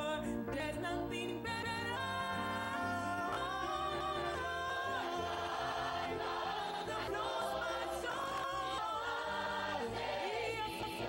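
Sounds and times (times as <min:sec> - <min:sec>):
choir singing gospel song: 0:00.9 - 0:11.0.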